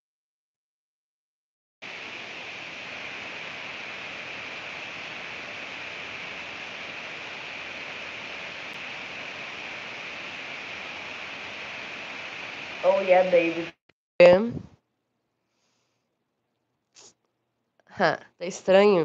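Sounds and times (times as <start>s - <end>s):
electronic hiss and static: 1.8s - 14.7s.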